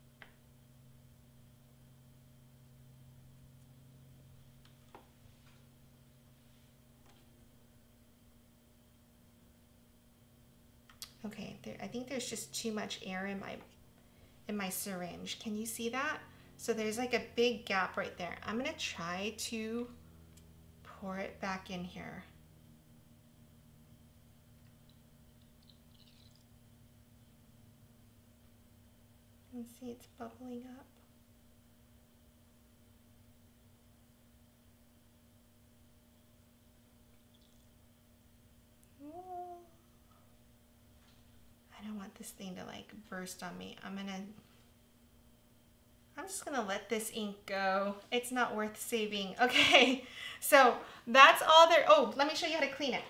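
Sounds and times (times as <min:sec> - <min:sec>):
low room hum: 0:00.0 - 0:53.0.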